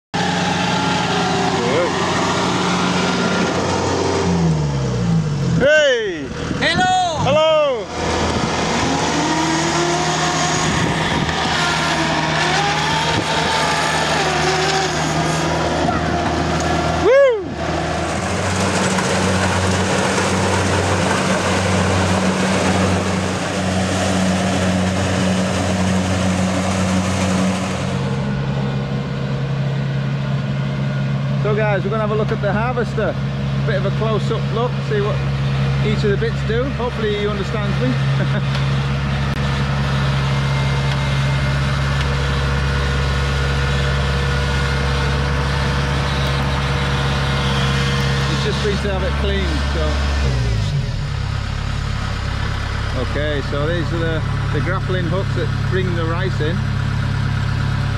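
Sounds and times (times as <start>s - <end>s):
combine harvester engine running: 0.2s - 57.9s.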